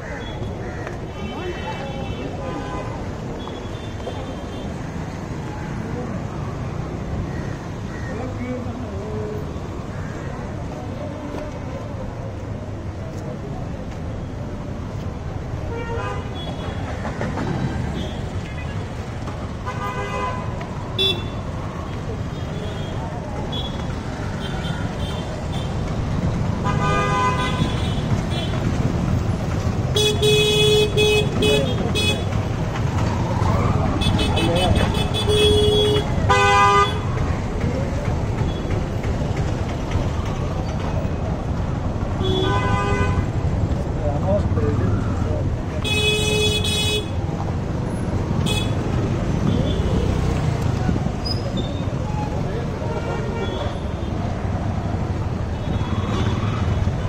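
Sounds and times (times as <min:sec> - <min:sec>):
traffic engines running: 0:00.0 - 0:57.0
vehicle horns honking: 0:26.6 - 0:28.6, 0:30.0 - 0:32.3, 0:34.0 - 0:37.1, 0:42.2 - 0:43.4, 0:45.8 - 0:47.2.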